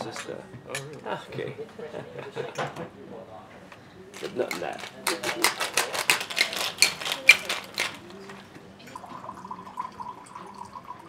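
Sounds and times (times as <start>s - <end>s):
ice rattling in cocktail shaker: 4.2s - 11.0s
liquid pouring into glass: 8.8s - 11.0s.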